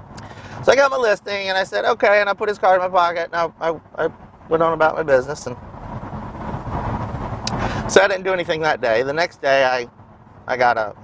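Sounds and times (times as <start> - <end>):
road and wind noise in car: 0.0 - 11.0.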